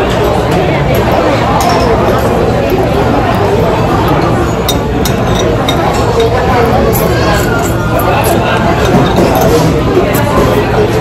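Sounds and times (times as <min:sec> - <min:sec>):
cutlery and dishes clinking: 0:00.0 - 0:11.0
many people talking: 0:00.0 - 0:11.0.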